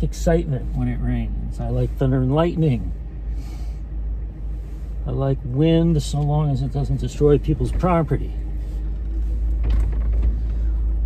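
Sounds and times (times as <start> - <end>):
car engine rumble: 0.0 - 11.0
road noise inside car: 0.0 - 11.0.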